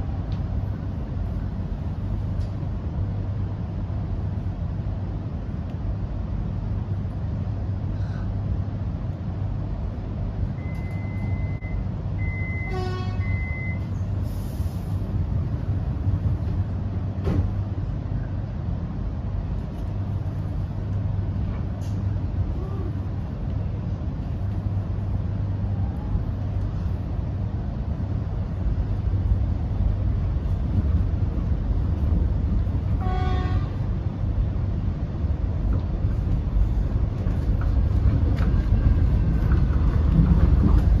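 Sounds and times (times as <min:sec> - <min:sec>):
train equipment humming: 0:00.0 - 0:41.0
train moving off: 0:10.0 - 0:41.0.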